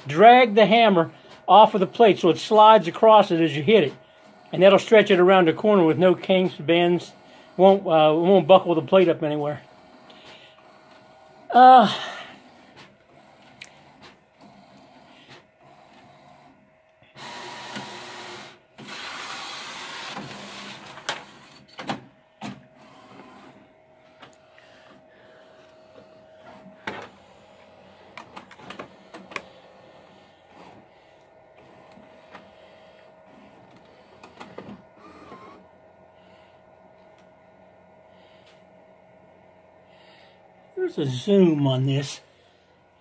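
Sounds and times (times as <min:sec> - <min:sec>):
large printer passes: 0:22.7 - 0:24.2.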